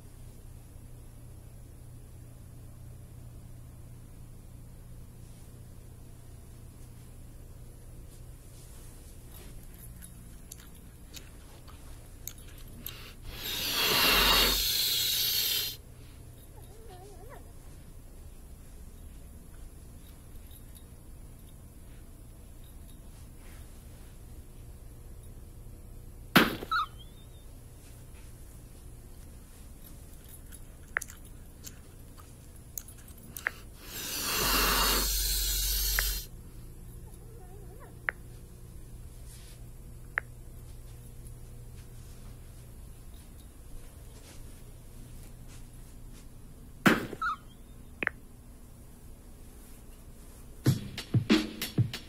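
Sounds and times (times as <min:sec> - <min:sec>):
air hissing into balloon: 0:12.9 - 0:15.8, 0:33.8 - 0:36.3.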